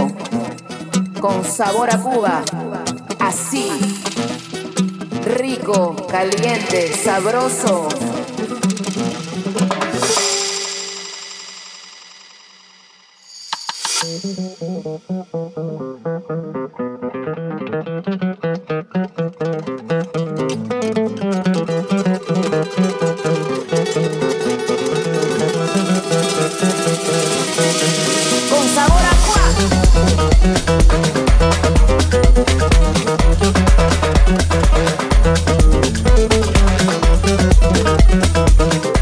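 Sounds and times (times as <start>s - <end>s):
house music mix over sound system: 25.3s - 39.0s.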